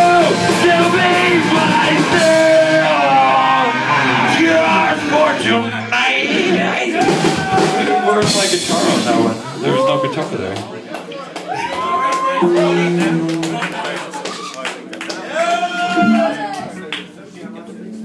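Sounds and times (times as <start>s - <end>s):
lead singer singing: 0.0s - 9.0s
bass: 0.0s - 10.8s
drums: 0.0s - 17.2s
guitar: 0.0s - 18.0s.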